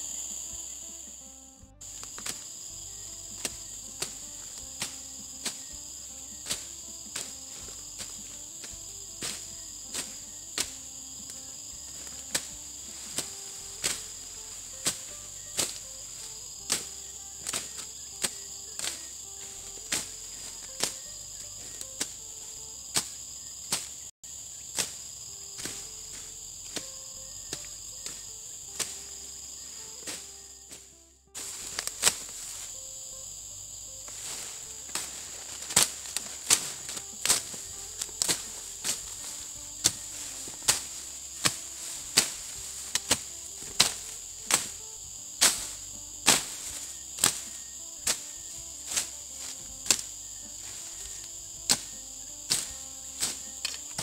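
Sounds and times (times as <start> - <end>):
insects chorus: 0.0 - 54.0
machete chopping weeds: 1.8 - 54.0.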